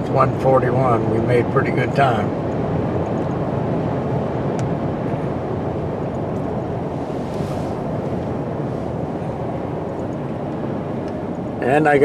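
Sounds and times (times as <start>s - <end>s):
road and wind noise in truck cabin: 0.0s - 12.0s.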